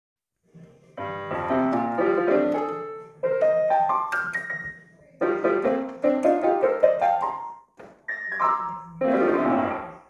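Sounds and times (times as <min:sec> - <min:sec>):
piano chords and runs: 0:01.0 - 0:09.9.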